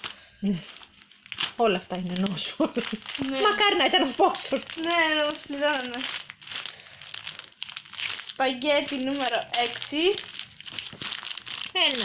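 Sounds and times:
plastic packet crinkling: 0.0s - 12.0s.

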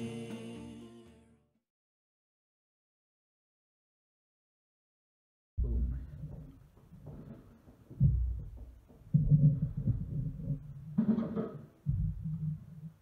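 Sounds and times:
dull low drum thumps: 5.6s - 13.0s.

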